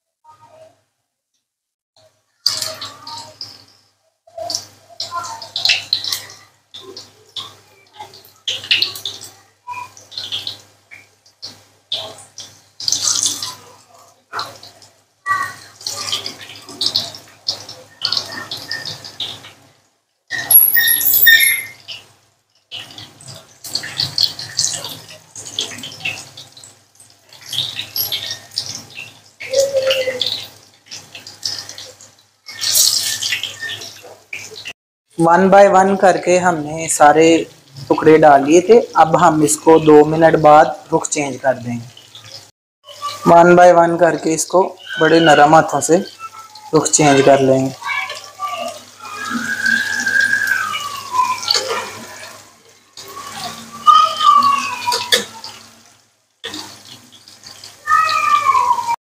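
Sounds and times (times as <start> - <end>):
food sizzling in hot oil: 2.3 - 34.8, 35.6 - 59.0.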